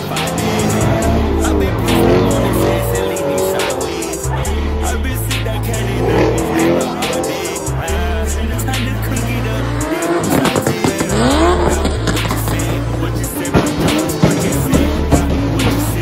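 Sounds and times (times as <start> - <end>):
bass-heavy music: 0.0 - 16.0
car engine revving: 0.0 - 16.0
tyres squealing: 0.0 - 16.0.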